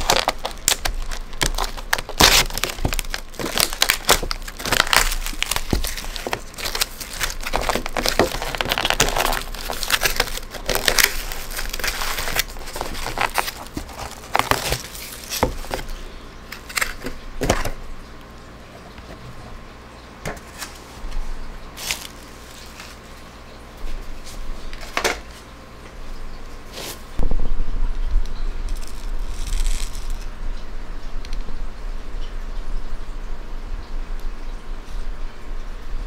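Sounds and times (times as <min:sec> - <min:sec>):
plastic film crinkling: 0:00.0 - 0:17.7, 0:20.5 - 0:24.0, 0:28.6 - 0:30.3.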